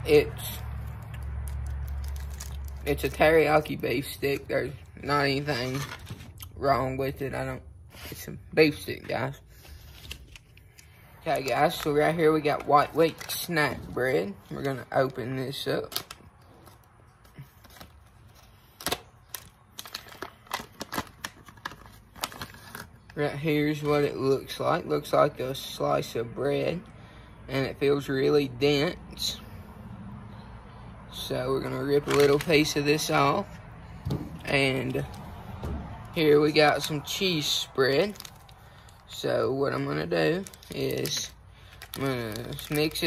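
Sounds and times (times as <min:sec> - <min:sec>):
plastic pouch crinkling: 0:00.5 - 0:06.4, 0:09.5 - 0:23.2, 0:31.6 - 0:33.5, 0:34.4 - 0:43.0.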